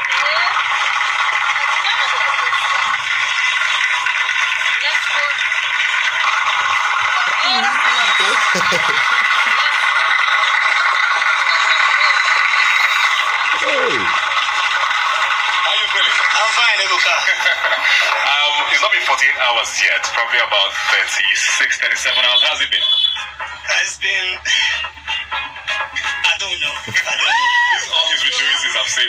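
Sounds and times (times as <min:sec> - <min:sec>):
crowd cheering and clapping: 0:00.0 - 0:18.8, 0:26.9 - 0:28.6
man laughing and greeting: 0:07.6 - 0:09.6, 0:13.6 - 0:14.1.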